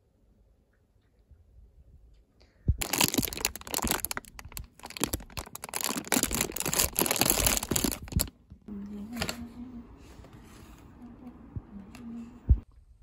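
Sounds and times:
plastic wrappers crackling: 2.8s - 9.5s.

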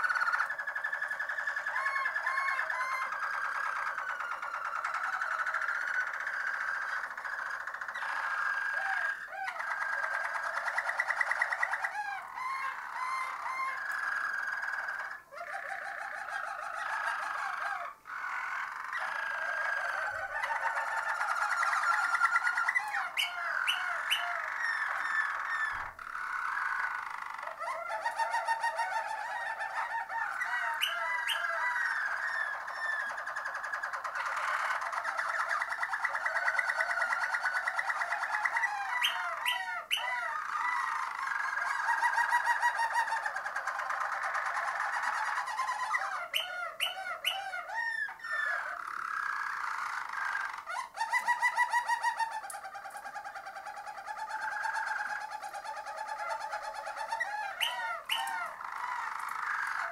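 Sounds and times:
canary singing trills: 0.0s - 59.9s.

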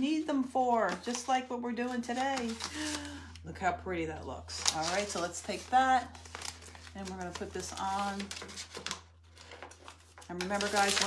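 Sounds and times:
low steady hum: 0.0s - 11.0s
paper crackling and rustling: 0.4s - 3.4s, 4.5s - 11.0s.

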